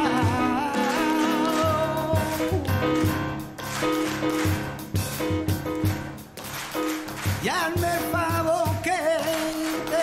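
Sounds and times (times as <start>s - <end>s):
live band playing: 0.0s - 10.0s.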